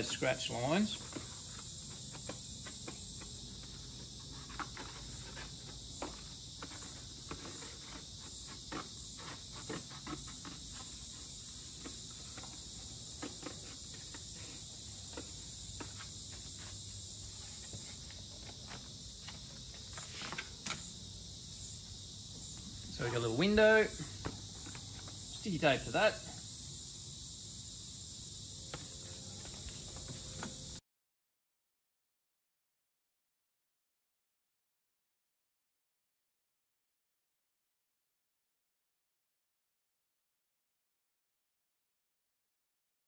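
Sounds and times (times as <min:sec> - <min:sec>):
insects chirring: 0:00.0 - 0:30.8
scissors snipping cardboard: 0:04.4 - 0:14.3.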